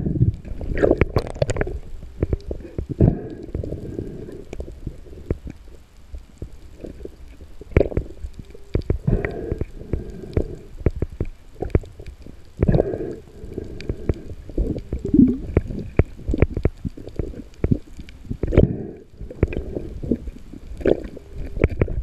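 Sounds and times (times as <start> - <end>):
underwater knocks and bumps: 0.0 - 3.2, 13.9 - 22.0.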